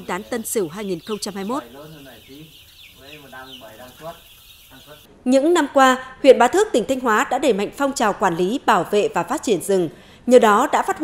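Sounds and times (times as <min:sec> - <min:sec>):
young chickens peeping: 0:00.0 - 0:05.1.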